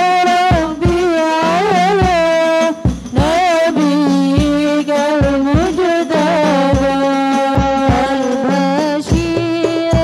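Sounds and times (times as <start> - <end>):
frame drums beating: 0.0 - 10.0
women singing through microphones: 0.0 - 10.0.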